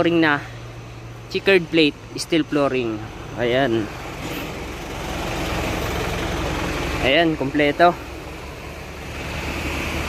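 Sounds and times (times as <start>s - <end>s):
vehicle engine rumbling: 0.0s - 10.0s.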